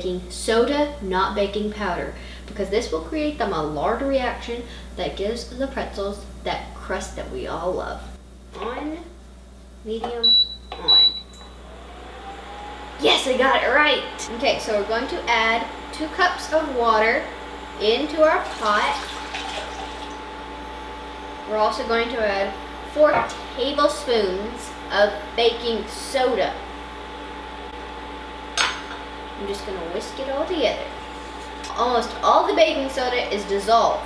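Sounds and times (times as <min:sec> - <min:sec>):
steady background hum: 0:00.0 - 0:34.0.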